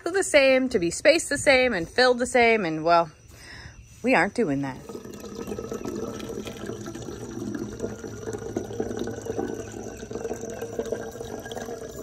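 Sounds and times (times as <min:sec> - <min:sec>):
liquid trickling into jar: 0:04.8 - 0:12.0.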